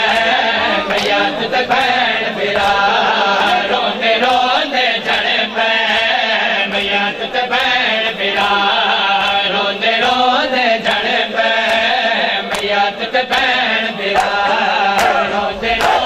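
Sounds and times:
men chanting: 0:00.0 - 0:16.0.

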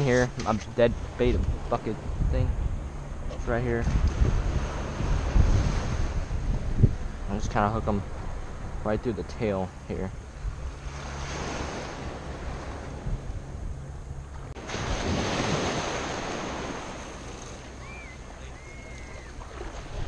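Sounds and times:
small waves washing on shore: 0:00.0 - 0:20.0
wind rumbling on microphone: 0:00.0 - 0:20.0.

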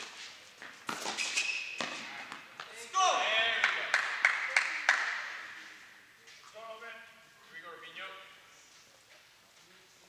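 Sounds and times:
hand claps echoing: 0:03.5 - 0:05.5.

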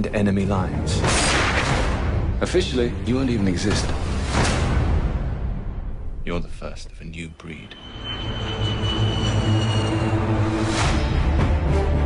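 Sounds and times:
thin high tone: 0:07.6 - 0:10.6.

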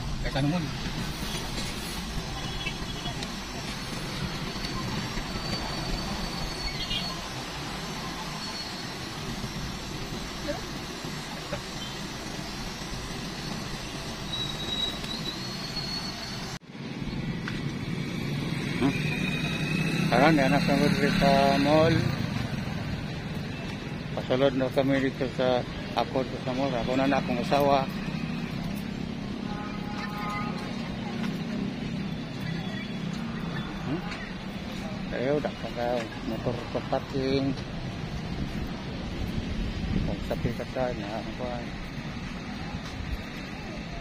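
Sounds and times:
outdoor ambience: 0:00.0 - 0:44.0
vehicle engines humming: 0:00.0 - 0:44.0.

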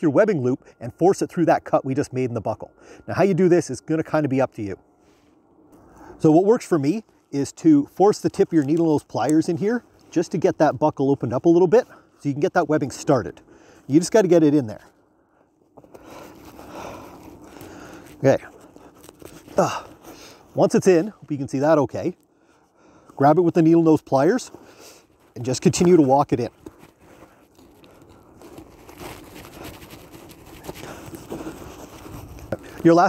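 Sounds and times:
webbing and canvas rustling: 0:06.1 - 0:33.0.

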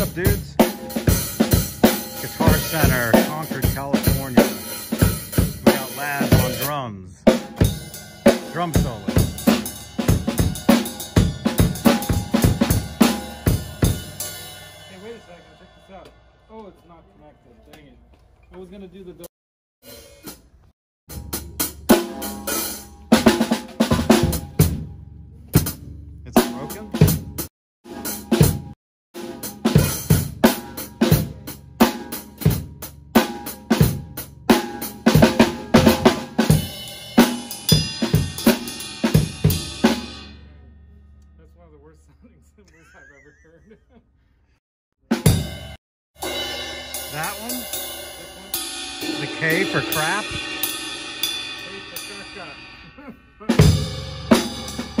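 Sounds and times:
drum kit solo: 0:00.0 - 0:16.4, 0:21.1 - 0:24.9, 0:25.5 - 0:40.5, 0:45.1 - 0:55.0
cymbals ringing out: 0:07.5 - 0:17.4, 0:46.2 - 0:55.0
cymbal struck with drumstick: 0:46.2 - 0:52.8.

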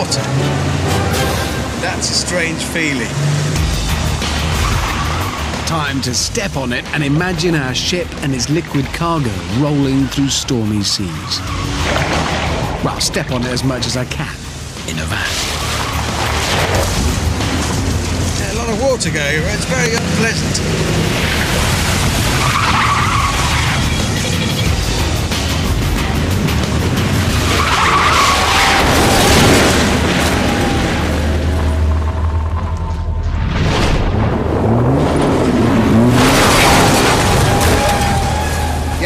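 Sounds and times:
van engine revving: 0:00.0 - 0:10.4, 0:11.4 - 0:39.0
background music: 0:00.0 - 0:39.0
tyres skidding: 0:00.0 - 0:39.0.

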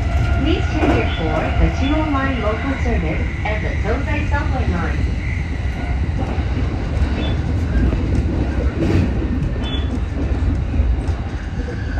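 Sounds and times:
train wheels rumbling on rail: 0:00.0 - 0:11.9.

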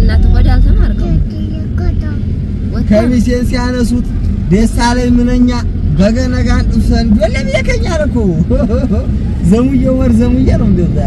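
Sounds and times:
road noise: 0:00.0 - 0:11.0
vehicle engine rumble: 0:00.0 - 0:11.0.

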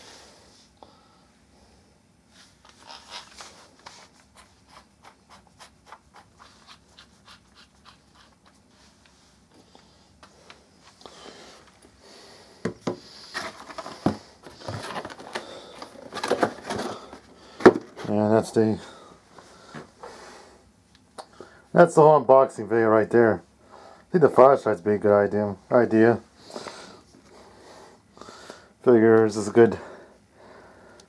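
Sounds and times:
plastic rustling and clattering: 0:13.2 - 0:18.2.

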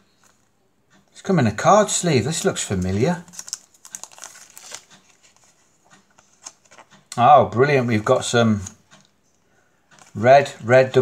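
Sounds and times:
playing cards ticking and sliding: 0:00.0 - 0:09.2, 0:09.9 - 0:11.0.

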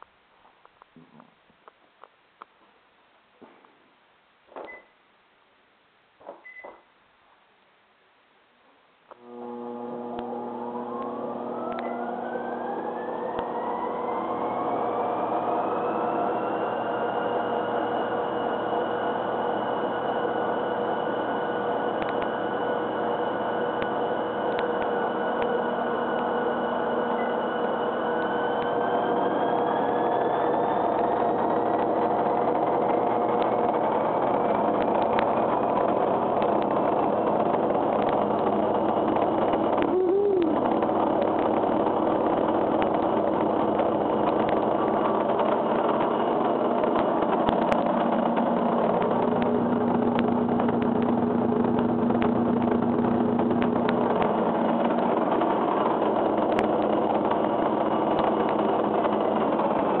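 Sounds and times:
steady hums: 0:09.1 - 1:00.0
machine whirring: 0:09.2 - 1:00.0
brief wavering tone: 0:10.9 - 0:14.8, 0:21.9 - 0:31.0.

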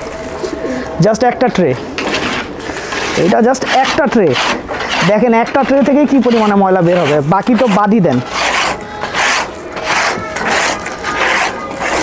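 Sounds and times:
hand tool scraping tray: 0:02.0 - 0:12.0.

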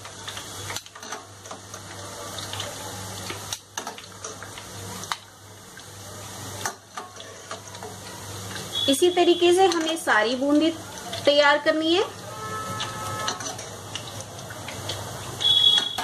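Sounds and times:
batter sizzling in hot oil: 0:00.0 - 0:16.0.

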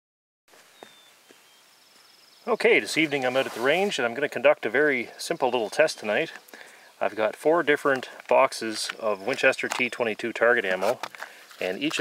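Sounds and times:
faint outdoor background noise: 0:00.5 - 0:12.0.

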